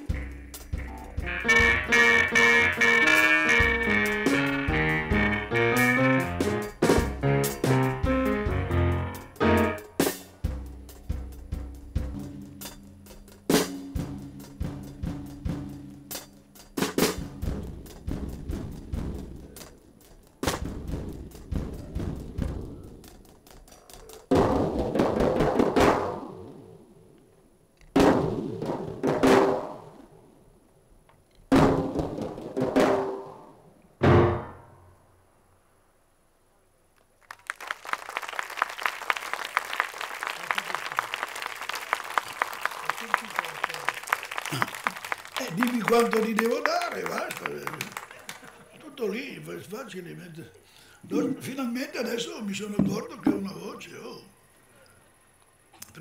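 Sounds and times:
piano and drums jazz: 0.0s - 26.2s, 34.0s - 34.7s
audience applause: 37.2s - 48.8s.

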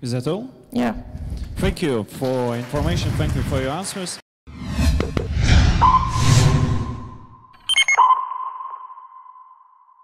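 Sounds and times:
electronic sonar-like ping: 5.8s - 6.2s, 7.4s - 10.0s.

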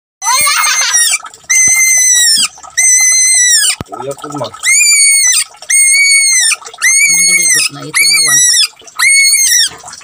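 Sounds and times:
rabbit screaming: 0.2s - 3.8s, 4.6s - 9.8s.

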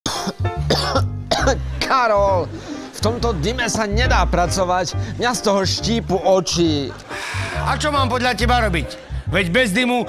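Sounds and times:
people coughing: 0.1s - 1.9s
background music with bass: 0.1s - 10.0s.

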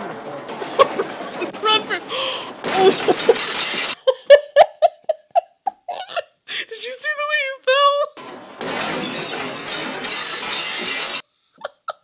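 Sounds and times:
furniture and crockery crashing: 2.6s - 4.0s, 8.3s - 11.2s.

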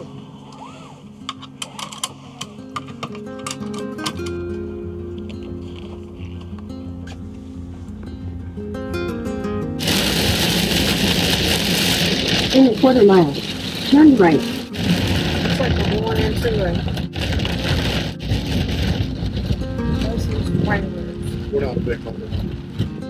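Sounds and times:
background music: 0.0s - 23.0s
seatbelt buckle clicks: 0.5s - 4.4s
heavy rain hissing: 9.8s - 20.7s
wet road noise: 9.8s - 23.0s.

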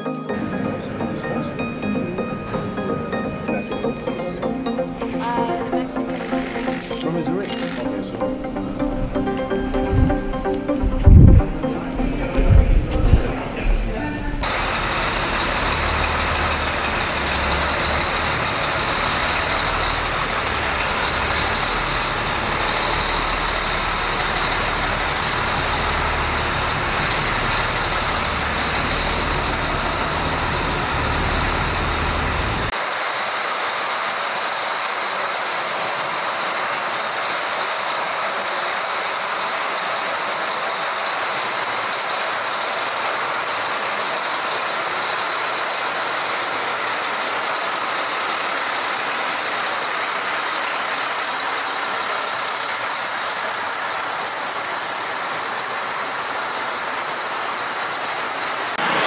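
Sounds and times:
heavy truck engine rumbling: 0.0s - 59.0s.

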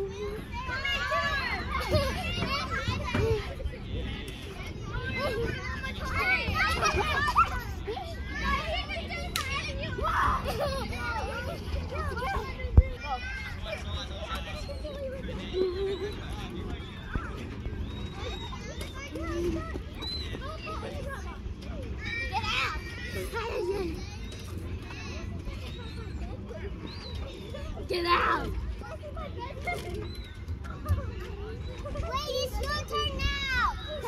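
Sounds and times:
children calling out: 0.0s - 3.8s
children calling out and shrieking: 0.0s - 13.8s, 18.0s - 34.0s.

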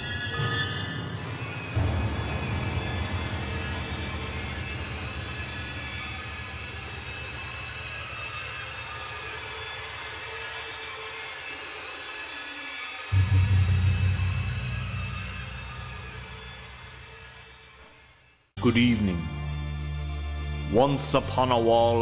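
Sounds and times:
dark ominous music: 0.0s - 11.6s, 12.8s - 22.0s
deep boom: 1.8s - 7.8s, 13.2s - 17.7s.

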